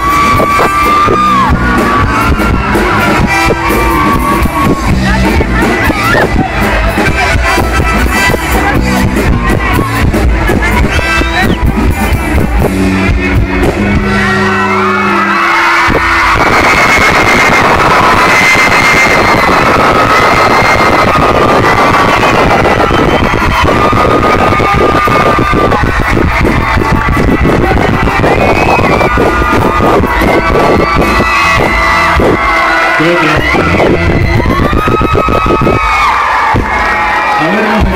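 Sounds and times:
live band playing loud music: 0.0 - 37.9.

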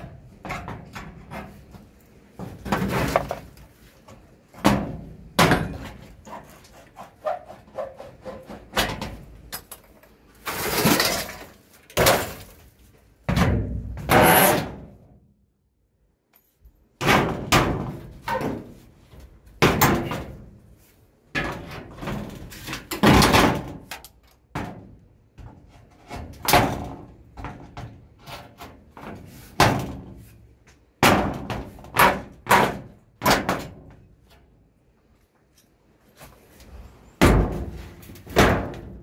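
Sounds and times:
metal roofing sheet banging: 4.6 - 6.5, 13.2 - 15.0, 17.0 - 18.8, 19.6 - 20.6, 21.3 - 23.9, 24.5 - 30.2, 31.0 - 34.0, 37.2 - 39.0.

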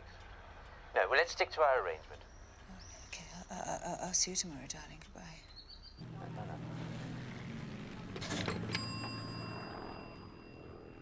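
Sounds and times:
low engine-like drone: 6.0 - 11.0
telephone bell ding: 8.2 - 11.0.

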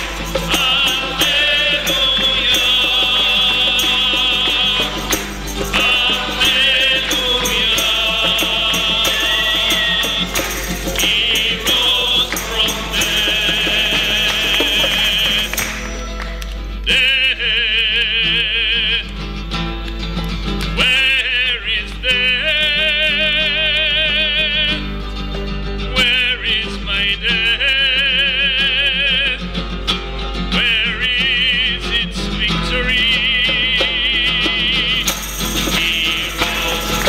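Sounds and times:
person singing a hymn: 0.0 - 16.0, 16.8 - 19.1, 20.8 - 24.8, 30.6 - 37.0
instrumental accompaniment: 0.0 - 17.4, 33.3 - 37.0.

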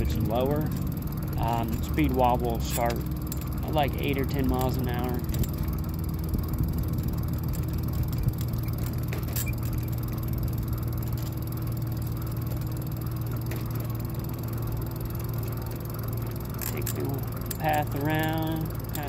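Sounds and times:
electric bike motor hum: 0.0 - 19.0
tyres rolling on path: 0.0 - 19.0.

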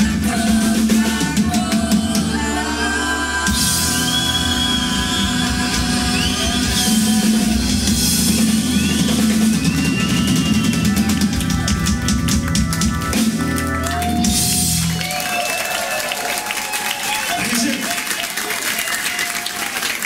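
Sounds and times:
live rock band playing: 0.0 - 15.9.

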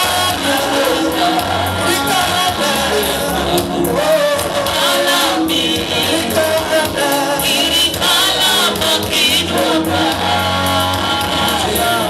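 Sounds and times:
backing voices singing: 0.0 - 12.0
man singing lead: 0.0 - 12.0.

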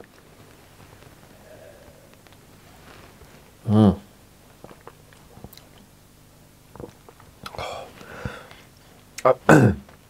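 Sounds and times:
wet mouth sounds and lip smacks: 6.7 - 7.6.

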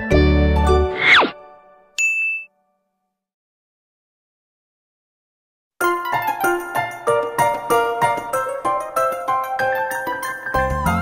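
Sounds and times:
cartoon ding: 2.0 - 2.5.

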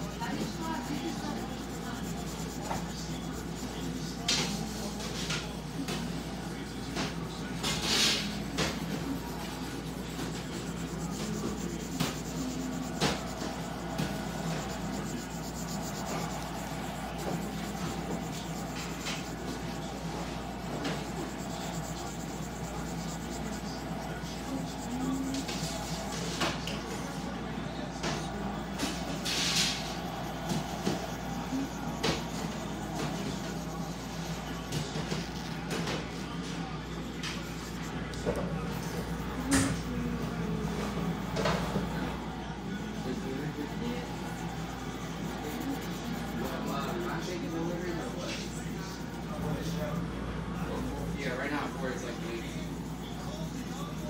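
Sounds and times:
pencil rubbing on paper: 0.0 - 54.0
room hum: 0.0 - 54.0.

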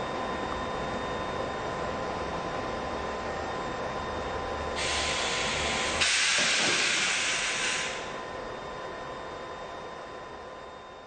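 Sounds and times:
compressed air hissing from train: 4.8 - 8.2.

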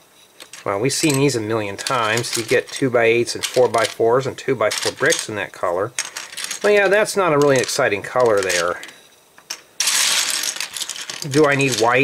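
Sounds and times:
plastic bricks clattering: 0.4 - 12.0.

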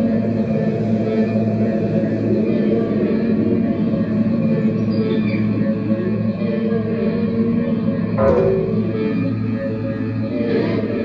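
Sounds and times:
ambient synthesizer drone: 5.5 - 11.0.

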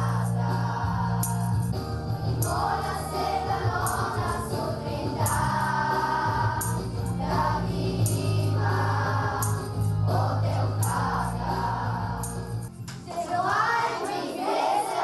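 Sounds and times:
children's choir singing: 0.0 - 1.5, 2.3 - 15.0
bass line: 0.0 - 12.7
instrumental backing track: 0.0 - 14.2.

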